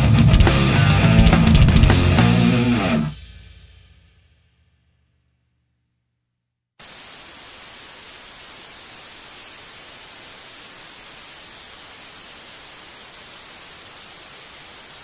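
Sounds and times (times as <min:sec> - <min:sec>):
television static hiss: 0:06.8 - 0:15.0.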